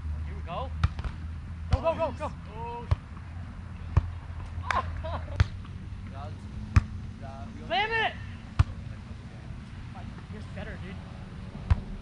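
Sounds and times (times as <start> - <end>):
players calling out: 1.7 - 2.9.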